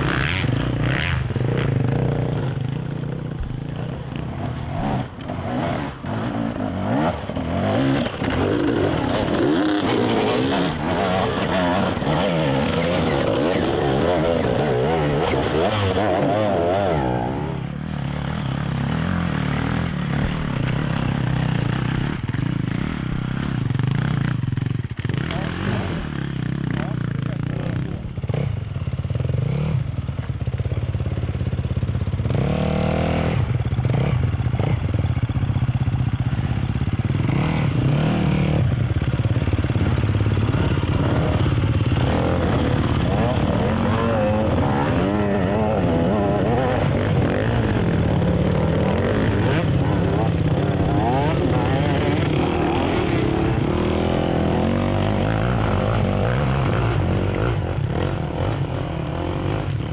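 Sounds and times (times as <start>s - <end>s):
motorcycle engines revving: 0.0s - 59.9s.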